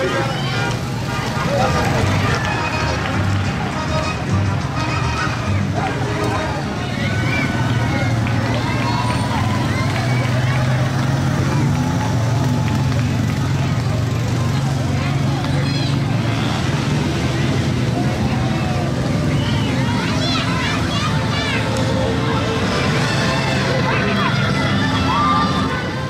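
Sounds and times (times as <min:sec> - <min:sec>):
people talking and calling out: 0:00.0 - 0:26.0
quad bike and suv engines: 0:00.0 - 0:26.0.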